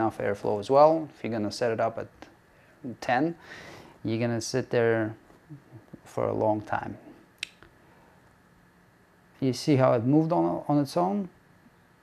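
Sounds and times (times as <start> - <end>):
hot-air station hissing: 2.4 - 7.2.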